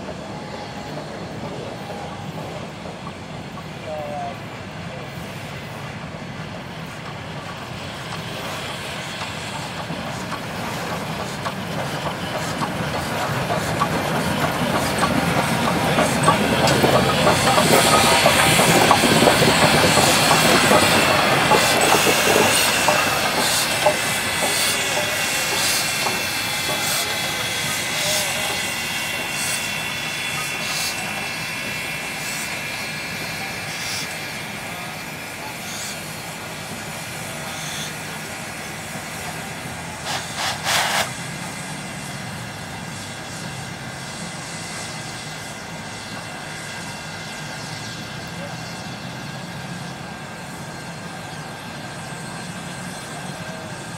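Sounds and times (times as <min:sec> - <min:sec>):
steam locomotive rolling past: 0:00.0 - 0:53.9
steam hissing: 0:00.1 - 0:53.9.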